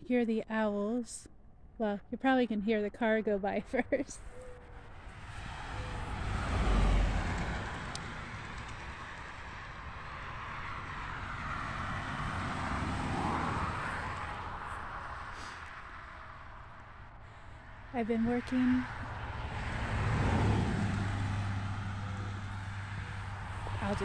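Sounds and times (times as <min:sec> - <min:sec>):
cars passing on road: 0:03.7 - 0:24.0.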